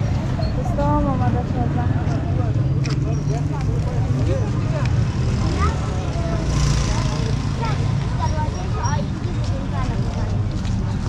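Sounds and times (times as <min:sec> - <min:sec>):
chatter of passers-by: 0:00.0 - 0:11.0
low rumble of traffic: 0:00.0 - 0:11.0.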